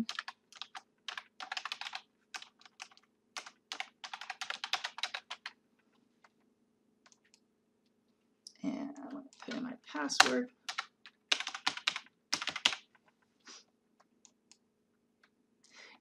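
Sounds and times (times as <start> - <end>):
computer keyboard typing: 0.0 - 5.6, 9.4 - 13.0.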